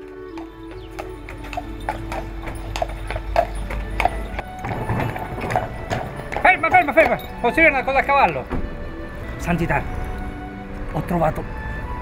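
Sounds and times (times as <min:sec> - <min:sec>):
horse hooves clip-clopping: 0:00.0 - 0:10.9
music with low sustained tones: 0:00.0 - 0:12.0.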